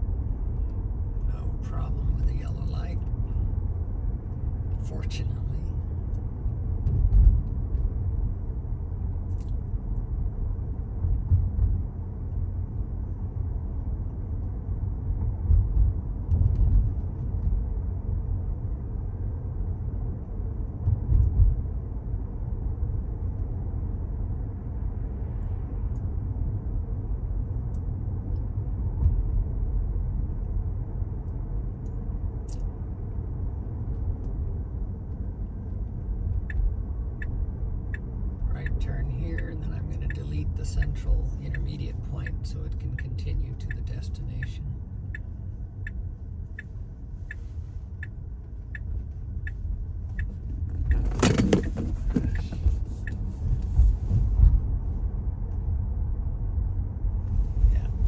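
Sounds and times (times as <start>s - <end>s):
tyre road noise rumbling: 0.0s - 58.0s.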